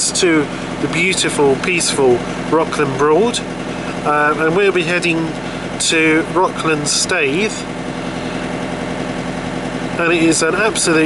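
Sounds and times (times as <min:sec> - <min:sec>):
boat diesel engine running: 0:00.0 - 0:11.0.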